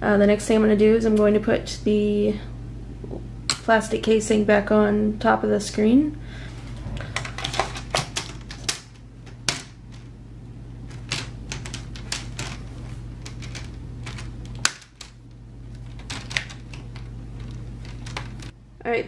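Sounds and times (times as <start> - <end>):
plastic clips snapping: 13.2 - 18.5.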